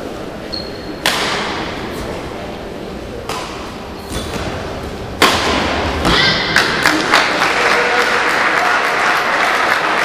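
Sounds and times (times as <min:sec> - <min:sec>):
racket hitting shuttlecock: 0:01.0 - 0:02.0, 0:03.2 - 0:07.1.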